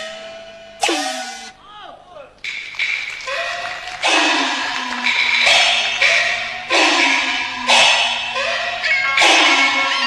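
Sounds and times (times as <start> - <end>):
cymbal clashes: 0.8 - 1.5, 4.0 - 10.0.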